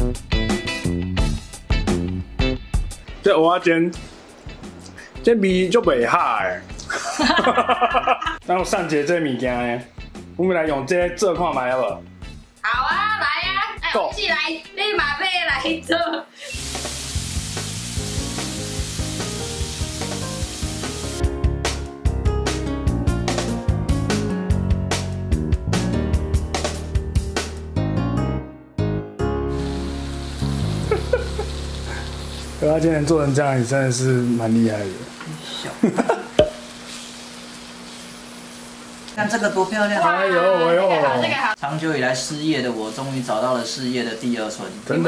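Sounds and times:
oil sizzling in grill pan: 16.4s - 21.3s, 29.5s - 45.0s.

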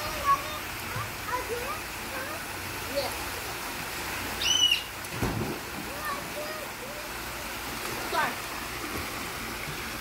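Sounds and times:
dull splash in pool: 0.0s - 10.0s
waterfall pouring into pool: 0.0s - 10.0s.

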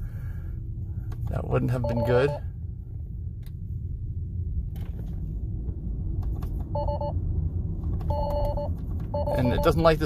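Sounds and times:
low road rumble in car: 0.0s - 10.0s.

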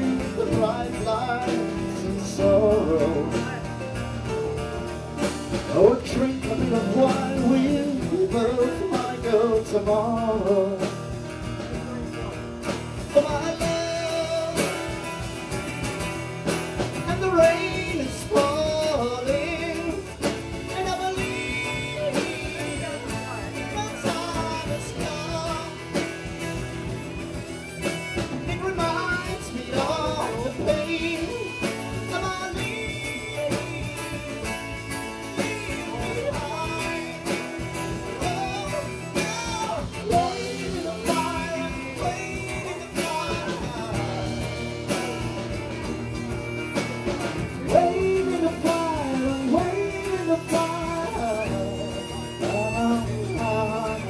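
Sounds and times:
acoustic guitars strumming: 0.0s - 54.0s.

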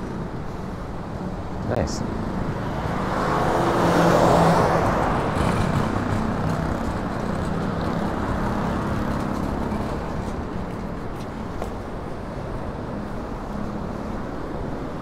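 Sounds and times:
low rumble of road noise: 0.0s - 15.0s
car passing: 1.7s - 11.9s.

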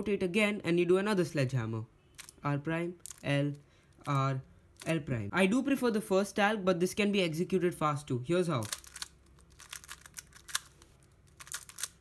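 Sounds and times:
plastic puzzle clicking: 8.6s - 12.0s.

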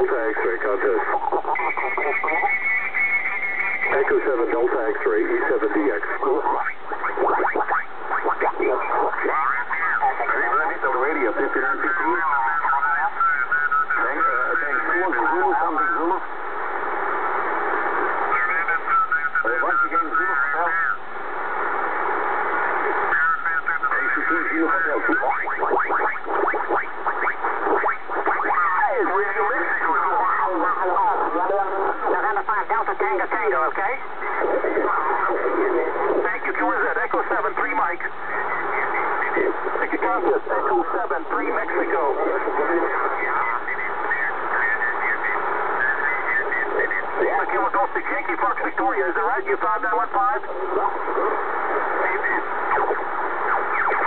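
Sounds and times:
radio signals sweeping in pitch: 0.0s - 16.2s, 22.8s - 48.5s, 51.1s - 54.0s
radio band noise hiss: 0.0s - 54.0s
weak radio voices: 0.0s - 54.0s.

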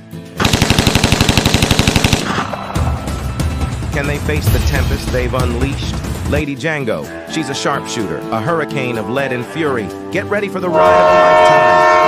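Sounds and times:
rapid machine-gun fire: 0.4s - 2.5s.

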